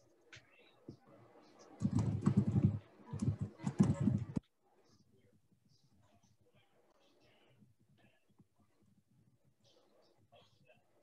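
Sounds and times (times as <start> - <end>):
computer keyboard typing: 1.8 - 4.4.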